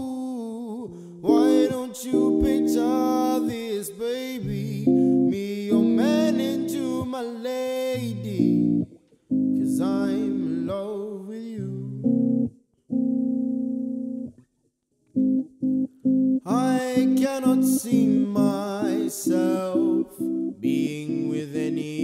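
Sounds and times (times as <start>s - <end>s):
man singing wordless vocals: 0.0s - 8.9s, 9.6s - 12.1s, 16.4s - 22.0s
electric guitar chords: 1.2s - 7.2s, 7.9s - 10.9s, 11.6s - 14.4s, 15.1s - 22.0s.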